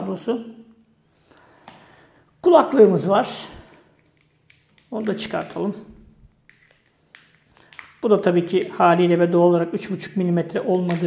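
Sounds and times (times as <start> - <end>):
wrapper rustling: 3.6 - 9.1.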